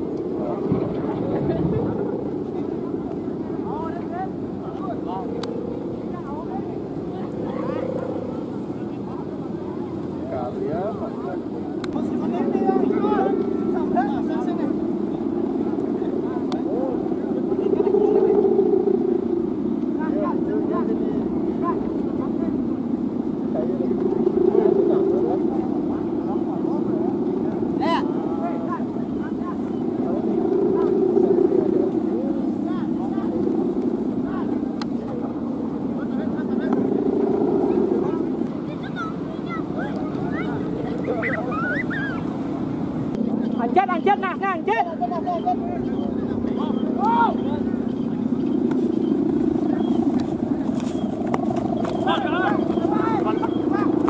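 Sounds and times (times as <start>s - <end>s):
droning hum of kite bow hummers: 0.0s - 54.0s
faint voices: 0.0s - 54.0s.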